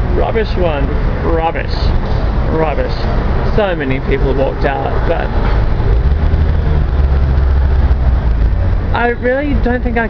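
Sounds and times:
city street traffic: 0.0s - 10.0s
vehicle engine low rumble: 0.0s - 10.0s.

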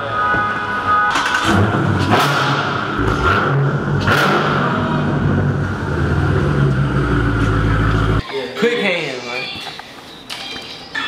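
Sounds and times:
car engine revving and idling: 1.2s - 8.2s.

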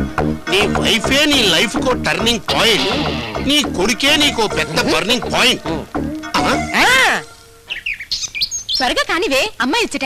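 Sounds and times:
person speaking: 0.5s - 7.3s
birds chirping: 2.5s - 9.8s.

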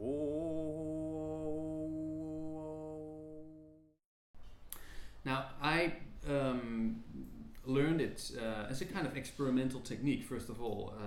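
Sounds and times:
overtone singing drone: 0.0s - 3.8s.

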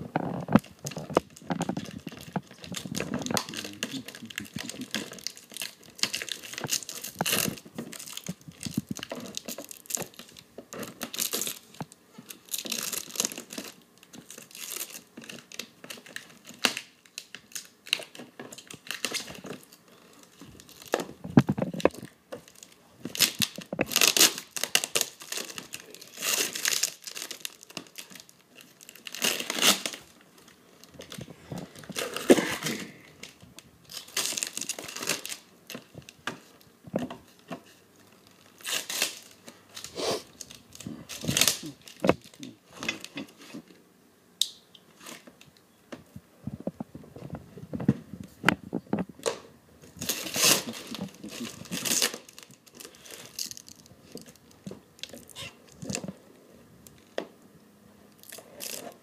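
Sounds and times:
tape and plastic wrap tearing: 0.0s - 43.8s, 44.4s - 45.5s, 49.2s - 56.2s, 58.1s - 59.0s.

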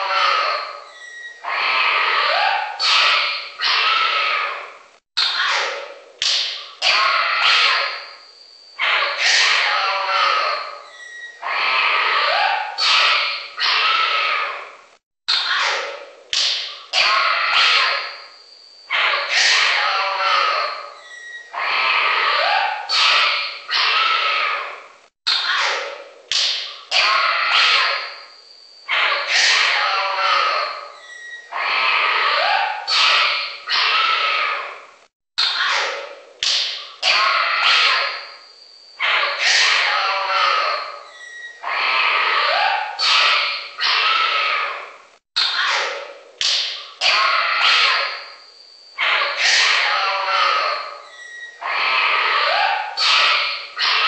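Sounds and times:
animal calls and cries: 0.0s - 54.0s.

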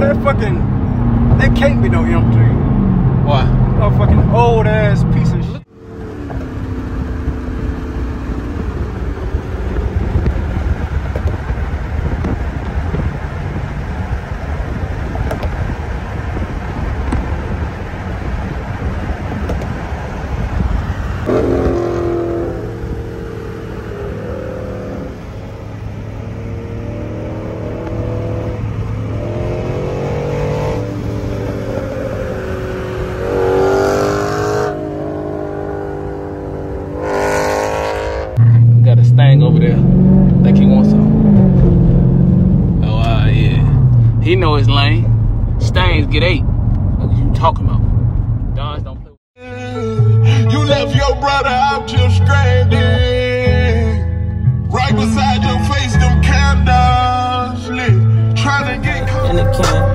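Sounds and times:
car engine running: 0.0s - 49.2s, 52.3s - 59.9s
wind and road noise: 0.0s - 49.2s.

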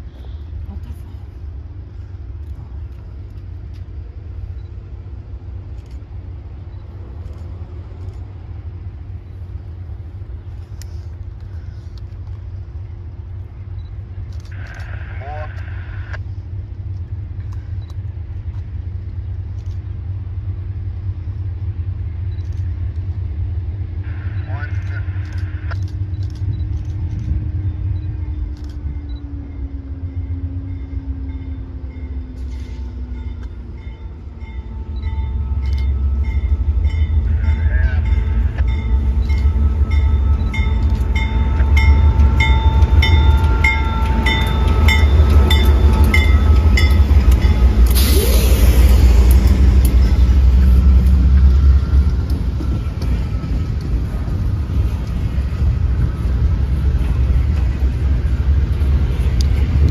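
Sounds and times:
diesel locomotive engine rumble: 0.0s - 59.9s.

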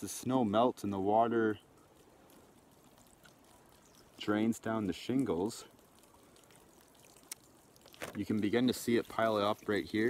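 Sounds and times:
water trickling onto shingles: 0.0s - 10.0s.

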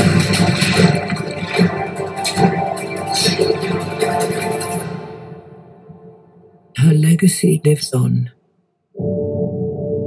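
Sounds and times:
trailer music: 0.0s - 6.7s, 9.0s - 10.0s.

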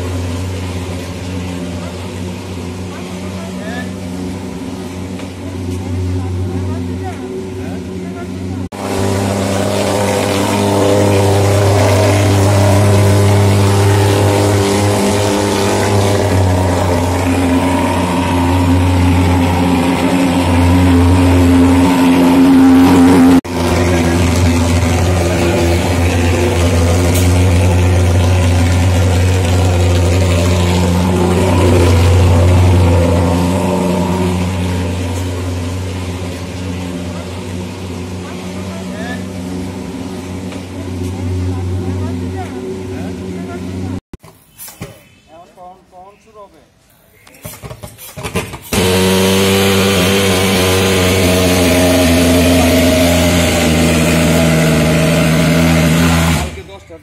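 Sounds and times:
pulse-jet fogging machine drone: 0.0s - 44.0s.

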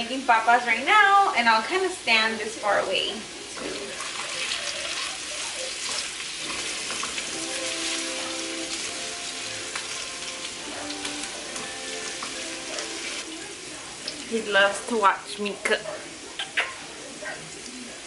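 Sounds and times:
potatoes sizzling in a pan: 0.0s - 18.0s.

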